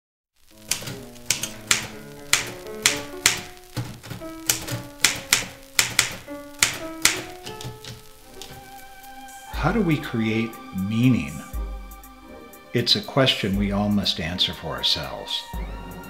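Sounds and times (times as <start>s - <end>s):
typewriter keys clacking: 0.6s - 8.6s
music with held notes: 0.6s - 16.0s.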